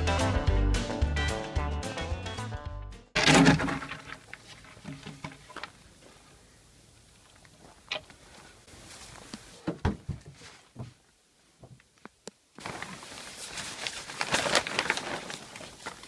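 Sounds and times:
plywood sheet knocking and scraping: 3.2 - 5.6, 9.6 - 11.0.

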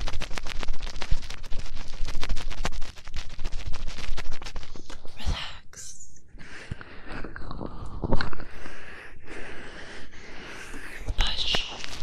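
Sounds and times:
latex gloves rubbing and crinkling: 0.0 - 5.2, 10.2 - 12.0.

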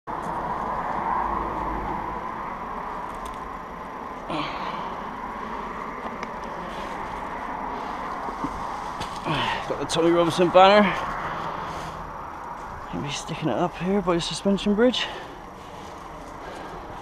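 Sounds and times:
road traffic hum: 0.0 - 17.0.

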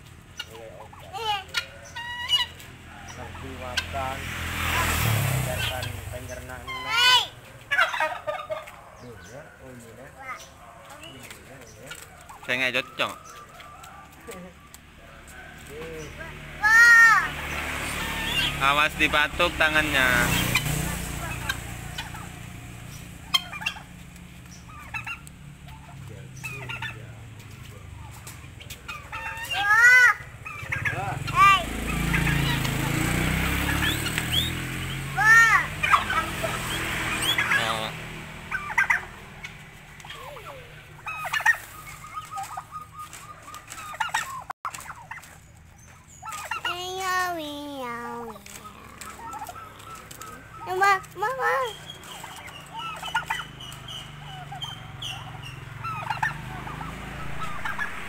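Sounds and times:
warbling turkey gobble: 0.0 - 47.2, 48.3 - 58.0
turkeys and guinea fowl calling: 0.0 - 58.0.

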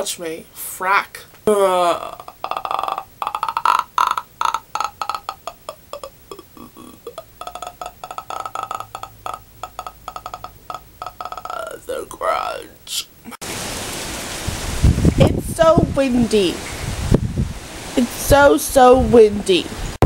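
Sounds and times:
woman croaking and clicking: 1.9 - 11.9
wind blowing on microphone: 13.5 - 20.0.

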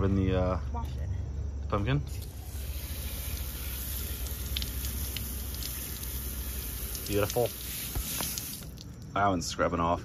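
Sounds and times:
hose water jet hissing: 2.1 - 8.8.

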